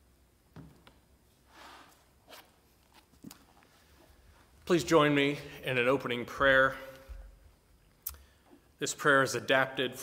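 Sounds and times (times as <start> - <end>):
soft book rustle: 1.3 - 4.6.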